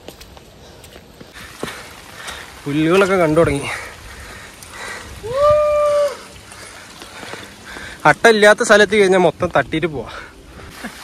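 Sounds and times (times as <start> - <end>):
person's long high call: 5.2 - 6.4.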